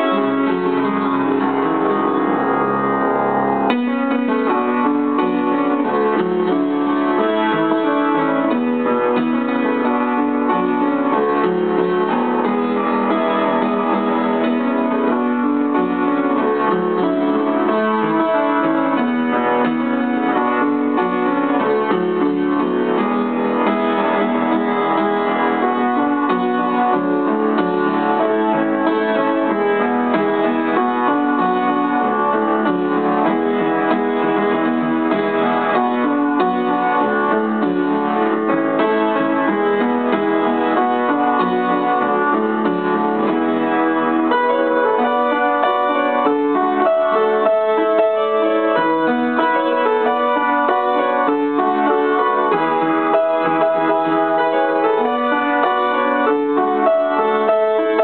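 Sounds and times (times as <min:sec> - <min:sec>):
upright piano playing: 0:00.0 - 0:58.0.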